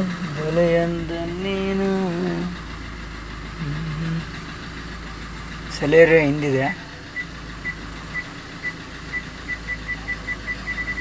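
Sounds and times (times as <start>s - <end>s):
car engine idling: 0.0s - 11.0s.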